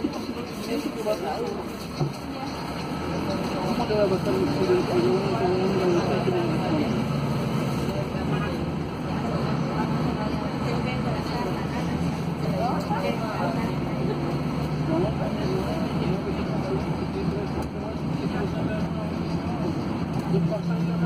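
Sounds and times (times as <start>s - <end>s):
bus engine droning: 0.0s - 21.0s
indistinct passenger voices: 0.0s - 21.0s.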